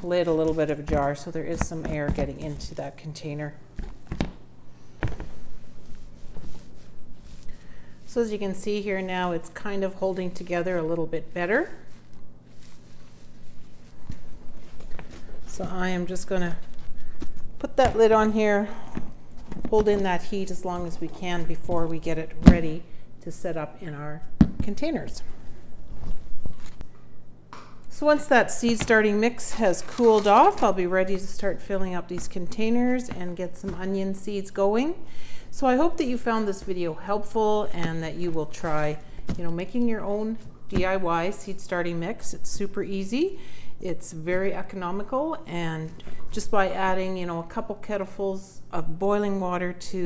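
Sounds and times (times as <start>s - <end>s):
plastic rustling: 0.0s - 2.9s, 3.7s - 22.8s, 28.6s - 34.5s.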